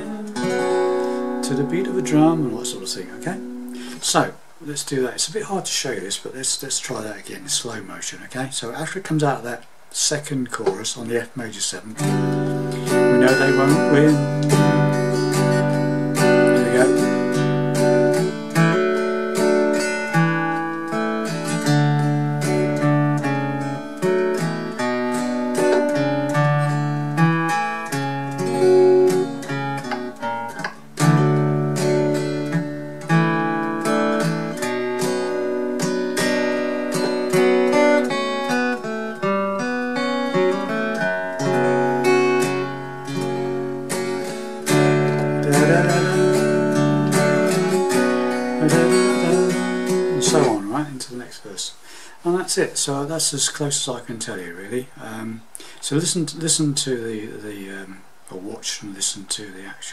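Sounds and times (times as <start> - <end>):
acoustic guitar picking: 0.0 - 4.6, 11.9 - 51.2.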